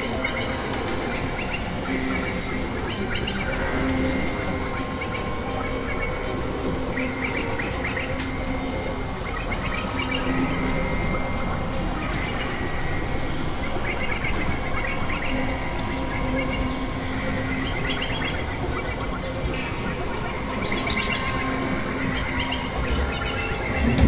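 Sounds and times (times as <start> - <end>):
noisy synthesizer drone: 0.0 - 24.0.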